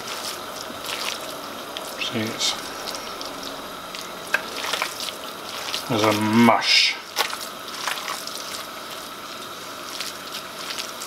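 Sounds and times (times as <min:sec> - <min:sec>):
background hiss: 0:00.0 - 0:07.8
hands squelching wet food mix: 0:00.0 - 0:11.0.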